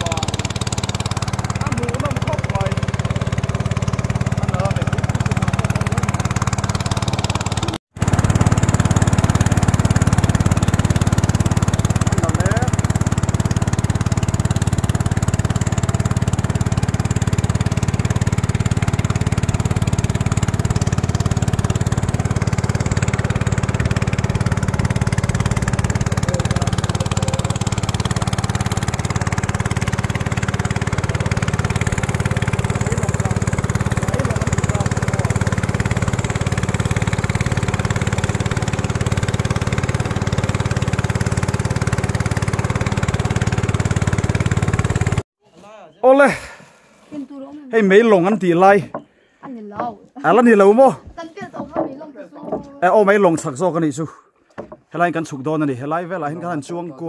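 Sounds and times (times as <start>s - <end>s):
small boat motor running: 0.0s - 45.3s, 46.2s - 53.6s, 54.2s - 54.9s.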